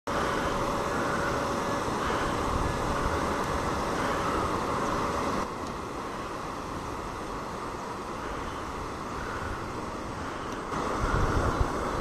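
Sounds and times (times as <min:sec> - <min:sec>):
river rushing over stones: 0:00.1 - 0:12.0.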